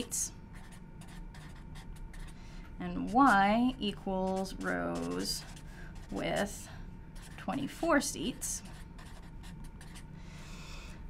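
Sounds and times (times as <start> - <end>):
pen scratching on paper: 0.6 - 2.4, 3.0 - 6.6, 7.2 - 10.1.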